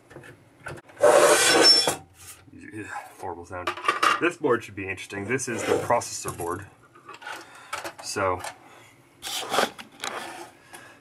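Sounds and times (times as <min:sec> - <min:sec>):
circuit board scraping on desk: 0:01.0 - 0:02.0, 0:09.2 - 0:10.6.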